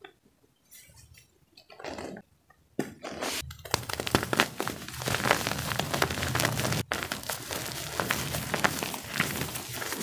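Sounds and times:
hand crumbling chalk powder: 0:03.2 - 0:10.0.

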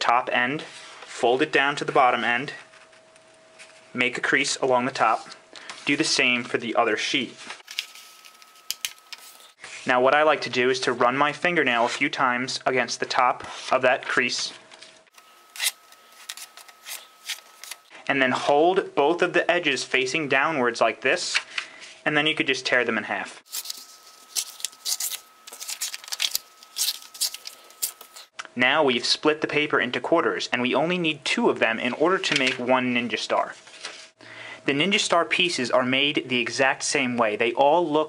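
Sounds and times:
paper crackles: 0:07.6 - 0:09.6, 0:23.5 - 0:28.3
paper folding: 0:07.6 - 0:09.6, 0:15.2 - 0:17.9, 0:23.5 - 0:28.3.

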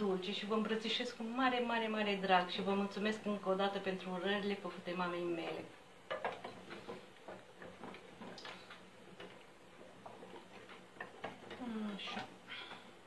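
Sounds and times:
spoon stirring wax in saucepan: 0:02.4 - 0:12.5.

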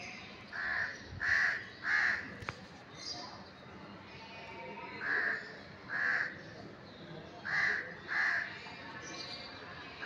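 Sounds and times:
crow cawing: 0:00.5 - 0:02.2, 0:05.0 - 0:06.4, 0:07.5 - 0:08.5.

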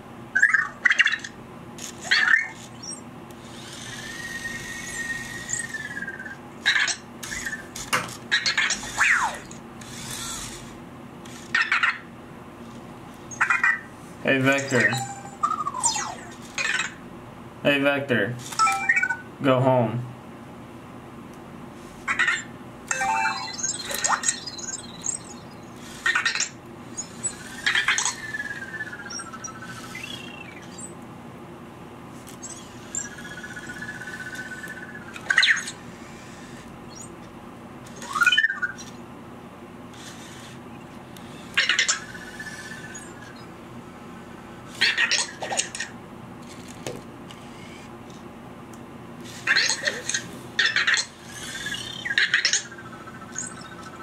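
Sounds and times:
robot falling chirp: 0:14.6 - 0:16.8, 0:18.6 - 0:19.3, 0:22.2 - 0:30.9
robot short beep: 0:14.9 - 0:15.4.

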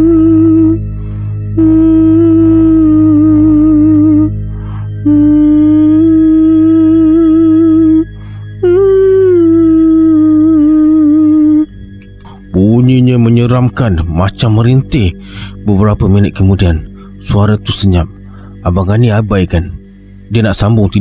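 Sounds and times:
woman singing wordlessly: 0:00.0 - 0:00.8, 0:05.1 - 0:11.7
low drone: 0:00.0 - 0:21.0.

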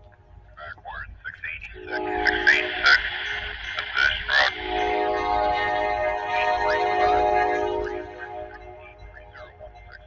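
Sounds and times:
voice through radio speaker: 0:00.6 - 0:03.1
background music with held chords: 0:01.7 - 0:10.0.

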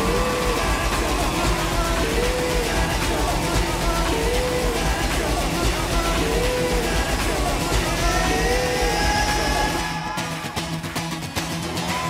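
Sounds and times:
looped acoustic guitar music: 0:00.0 - 0:12.0.

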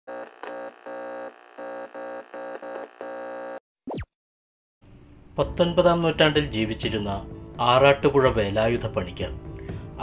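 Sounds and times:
stuttering electrical buzzing hum: 0:00.1 - 0:04.0.

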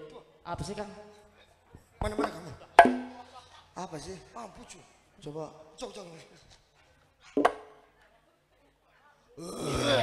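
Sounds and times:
sharp percussive smack with ring: 0:02.2 - 0:03.2.

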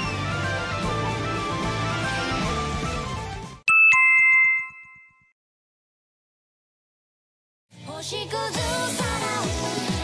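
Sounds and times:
background music: 0:00.0 - 0:03.6, 0:07.7 - 0:10.0.

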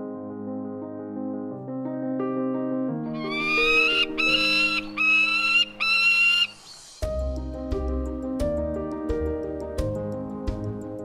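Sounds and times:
soft piano music: 0:00.0 - 0:11.0
falcon calling: 0:03.2 - 0:06.8.

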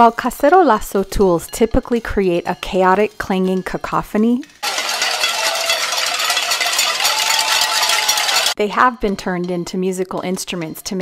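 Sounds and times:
crowd banging pots and pans: 0:03.2 - 0:08.6.

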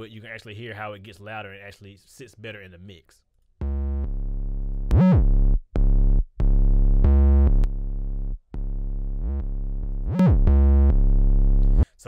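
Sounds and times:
distorted bass notes: 0:03.6 - 0:11.9.

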